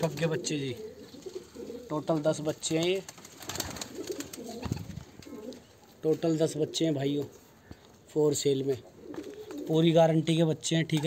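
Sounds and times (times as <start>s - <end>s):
pigeons cooing: 0.0s - 2.6s, 3.2s - 7.8s, 8.6s - 9.9s.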